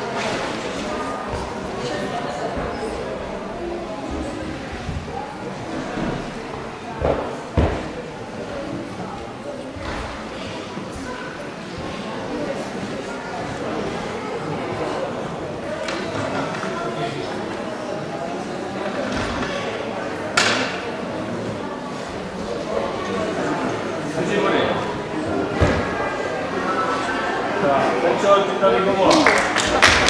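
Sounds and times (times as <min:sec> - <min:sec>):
voices murmuring: 0:00.0 - 0:29.3.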